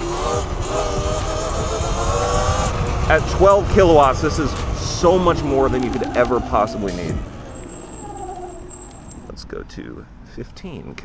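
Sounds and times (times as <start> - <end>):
wind and tyre rumble: 0.0 - 11.0.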